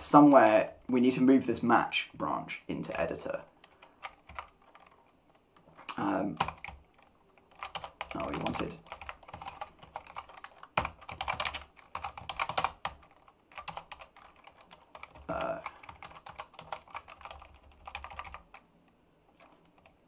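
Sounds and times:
computer keyboard typing: 3.6s - 18.6s, 19.3s - 20.0s.

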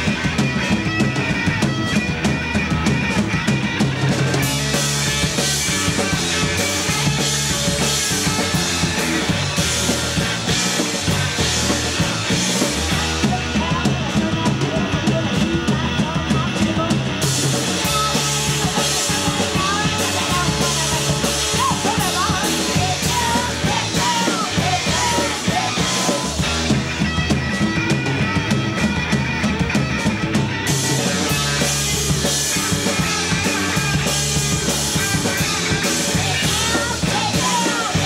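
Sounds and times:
bass drum and snare beat: 0.0s - 38.0s
punk rock band playing live: 0.0s - 38.0s.

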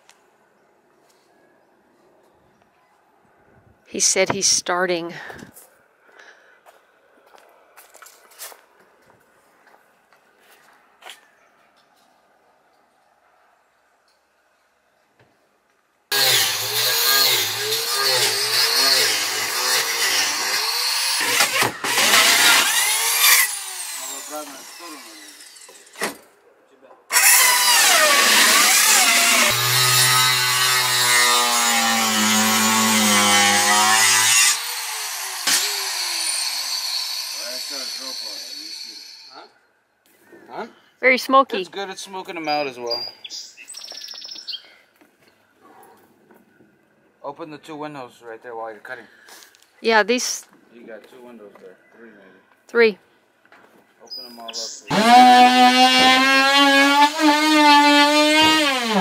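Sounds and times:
electric power saw cutting wood: 16.1s - 26.2s, 27.1s - 39.3s, 54.8s - 59.0s.

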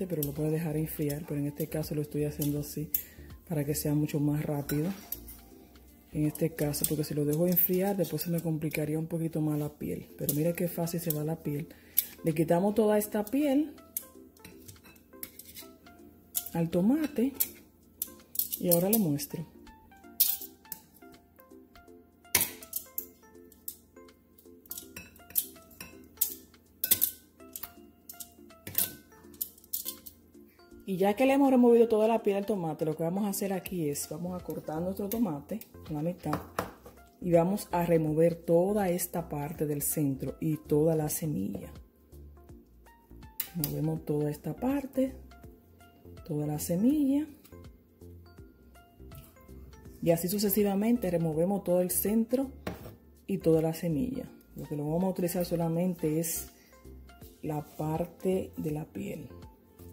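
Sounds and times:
background music: 0.0s - 59.9s
fork clinking against glass bowl: 20.2s - 20.8s, 24.7s - 30.2s.

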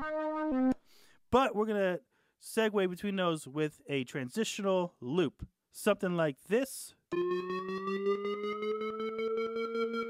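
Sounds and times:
pulsing synth with rising pitch: 7.1s - 10.0s.

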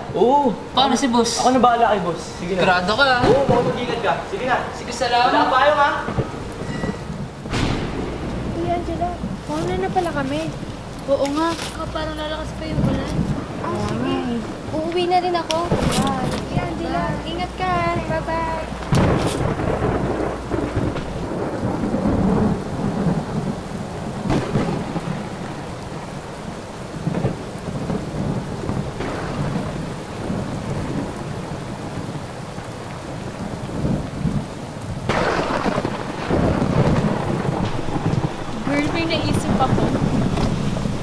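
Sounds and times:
heavy rain falling: 0.0s - 41.0s
thunder rumbling: 0.0s - 41.0s.

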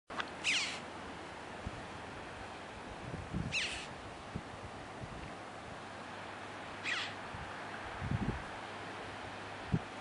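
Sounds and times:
background rush of noise: 0.1s - 10.0s
bird high falling calls: 0.4s - 0.9s, 3.5s - 3.9s, 6.8s - 7.2s.

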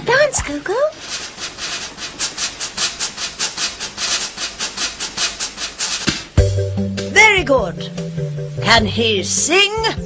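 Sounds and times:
scratchy shaking rhythm: 0.0s - 10.0s.

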